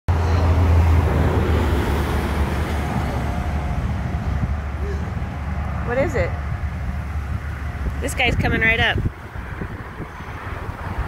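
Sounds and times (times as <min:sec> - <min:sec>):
low engine rumble: 0:00.1 - 0:11.0.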